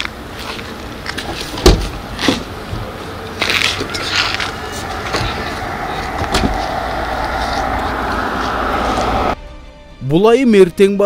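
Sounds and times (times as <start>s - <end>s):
car engine humming: 0.1s - 9.4s.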